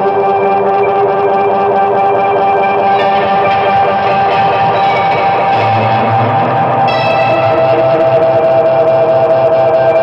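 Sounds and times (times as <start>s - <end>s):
electric guitars: 0.0s - 10.0s
post-punk band music: 0.0s - 10.0s
held note: 3.0s - 8.8s.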